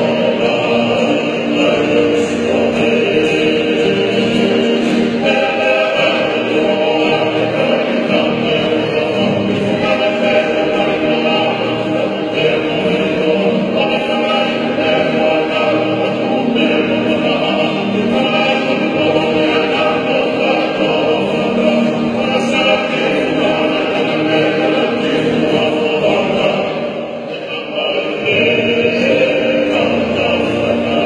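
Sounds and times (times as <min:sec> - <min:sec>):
acoustic guitars strumming: 0:00.0 - 0:31.0
men singing in chorus: 0:00.0 - 0:31.0.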